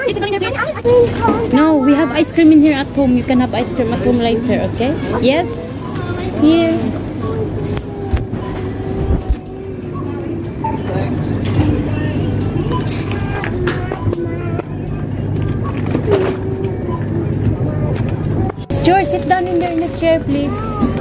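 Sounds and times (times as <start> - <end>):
groceries knocking and rustling: 18.0 - 21.0.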